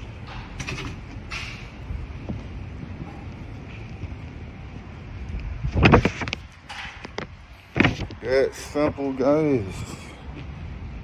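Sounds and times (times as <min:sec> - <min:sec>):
wind rumbling on microphone: 0:01.1 - 0:08.6.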